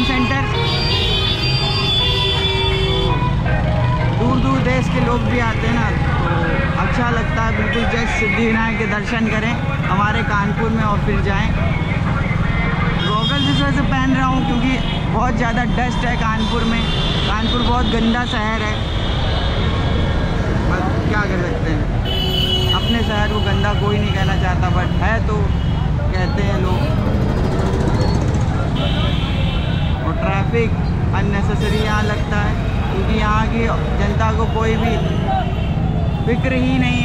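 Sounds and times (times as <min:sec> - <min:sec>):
road traffic rumble: 0:00.0 - 0:37.0
background music: 0:03.0 - 0:06.9.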